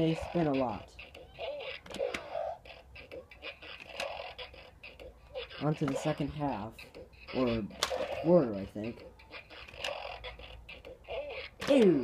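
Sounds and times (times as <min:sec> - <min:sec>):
toy beat music and game sounds: 0:00.0 - 0:12.0.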